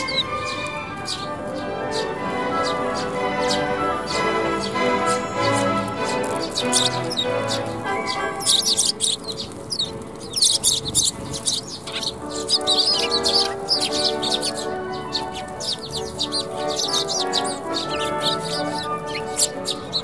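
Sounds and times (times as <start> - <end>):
background music with held notes: 0.0 - 20.0
sparrows chirping: 0.0 - 20.0.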